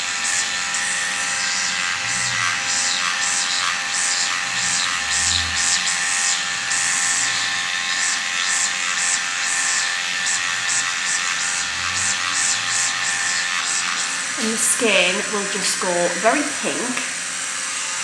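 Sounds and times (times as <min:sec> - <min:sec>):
microneedling pen buzzing hum: 0:00.0 - 0:18.0.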